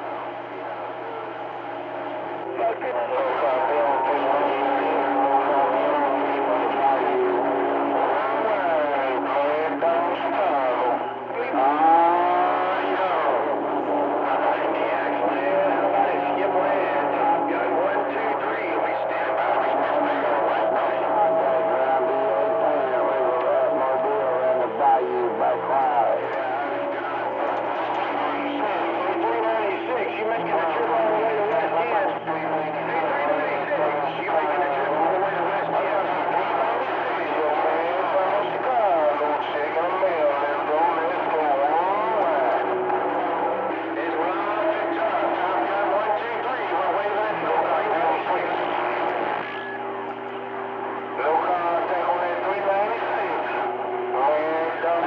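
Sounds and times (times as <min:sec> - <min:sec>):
garbled radio voices: 0:00.0 - 0:55.0
steady low hum: 0:00.0 - 0:55.0.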